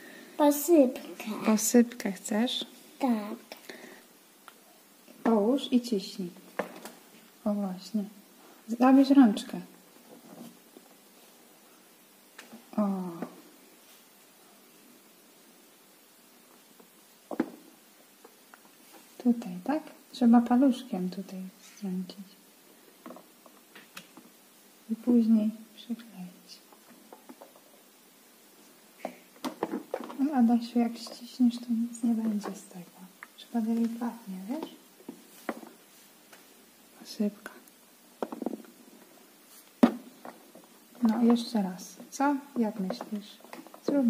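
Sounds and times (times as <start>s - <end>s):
plastic toy parts knocking: 29.4s - 30.2s, 38.2s - 38.7s.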